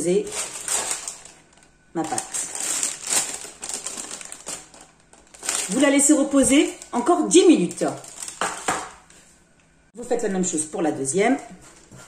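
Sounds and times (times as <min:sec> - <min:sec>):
baking paper rustling: 0:00.0 - 0:09.4.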